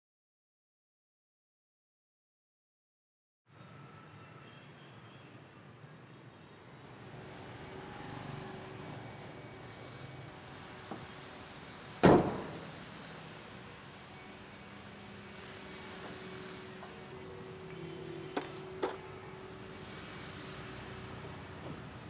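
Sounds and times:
low workshop background: 0:06.6 - 0:22.0
truck hood slamming shut: 0:12.0 - 0:12.6.

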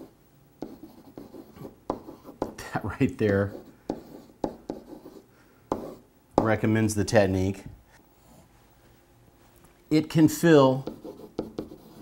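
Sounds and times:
marker scratching on whiteboard: 0:00.0 - 0:06.6, 0:10.7 - 0:12.0.

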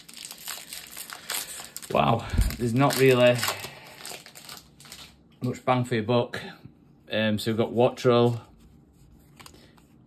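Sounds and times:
foil wrapper crinkling: 0:00.0 - 0:05.2.

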